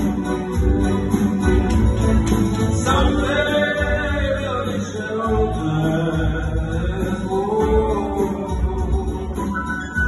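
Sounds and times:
instrumental accompaniment with low beat: 0:00.0 - 0:10.0
man singing through microphone: 0:02.8 - 0:10.0.

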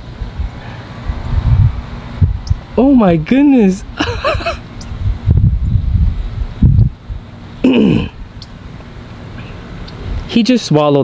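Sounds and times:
wind buffeting microphone: 0:00.0 - 0:08.5.

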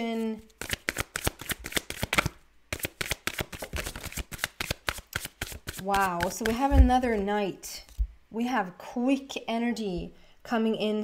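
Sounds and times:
cards being shuffled: 0:00.1 - 0:07.1.

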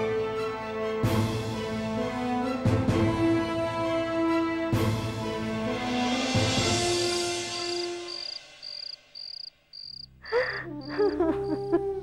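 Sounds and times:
crickets chirping: 0:06.9 - 0:11.8.

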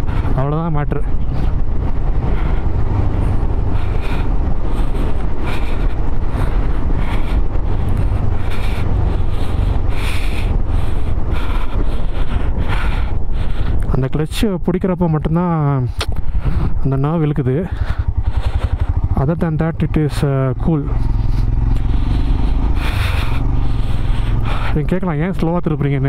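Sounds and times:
deep engine rumble: 0:00.0 - 0:26.0
wind rushing over microphone: 0:00.0 - 0:26.0.

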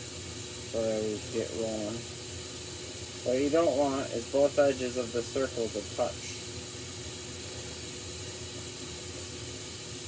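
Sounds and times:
glassworking torch hissing: 0:00.0 - 0:10.0.

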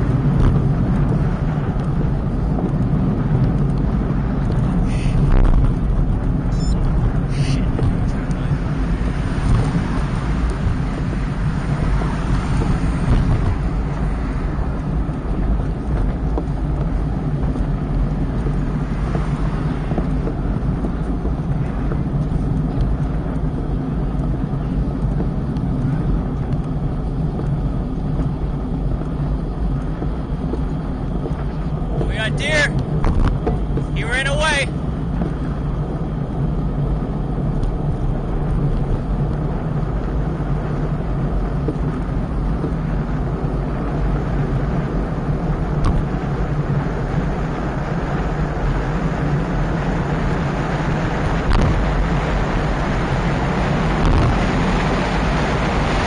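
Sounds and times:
road noise from bicycle: 0:00.0 - 0:56.0
wind rush: 0:00.0 - 0:56.0.

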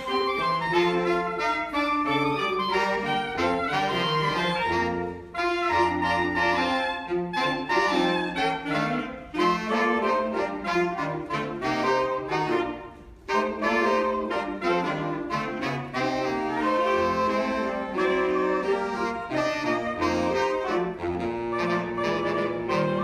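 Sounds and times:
saxophone ensemble playing: 0:00.0 - 0:23.0.

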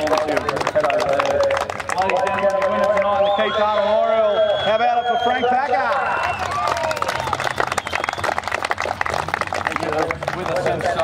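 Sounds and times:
crowd clapping: 0:00.0 - 0:11.0.

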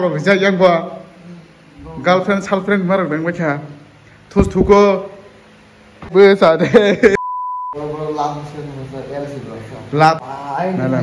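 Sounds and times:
censor bleep: 0:07.2 - 0:07.9.

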